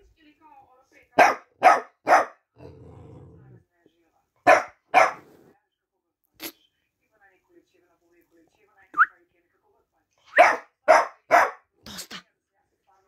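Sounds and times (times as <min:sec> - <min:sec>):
puppy barking: 0:01.2 - 0:02.5, 0:04.4 - 0:05.3, 0:10.3 - 0:11.7
puppy growling: 0:02.6 - 0:03.6.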